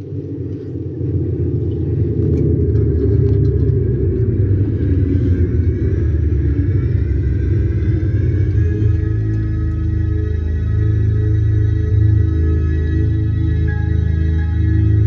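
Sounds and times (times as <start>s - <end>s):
sustained higher chord tones: 0.0s - 15.0s.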